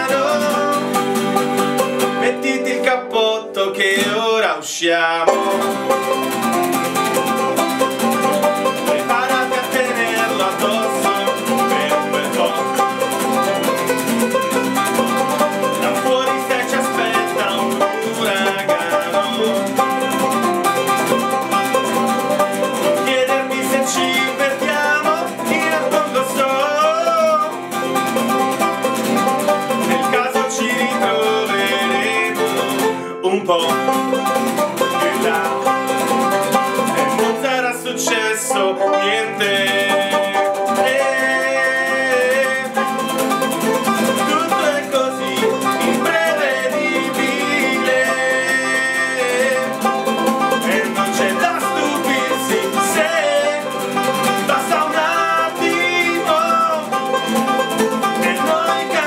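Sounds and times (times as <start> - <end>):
man singing: 0.0 - 1.1, 2.1 - 6.2, 8.7 - 13.6, 15.2 - 20.5, 22.8 - 27.7, 29.7 - 36.0, 36.8 - 59.0
banjo picking: 0.0 - 4.4, 5.3 - 59.0
acoustic guitar strumming: 0.0 - 4.5, 5.3 - 59.0.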